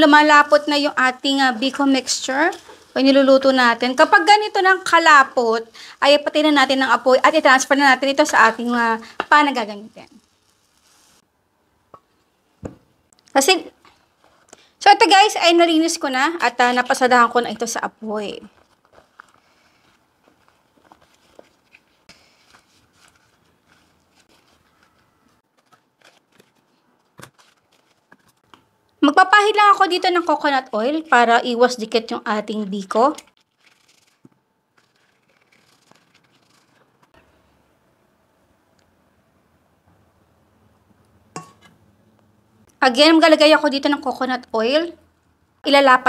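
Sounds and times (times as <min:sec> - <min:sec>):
leaves rustling: 0:00.0 - 0:03.1, 0:06.3 - 0:11.2, 0:18.5 - 0:25.0
rice scraped out of pan: 0:10.0 - 0:11.2
cookware clinking on glass dish: 0:41.4 - 0:41.7.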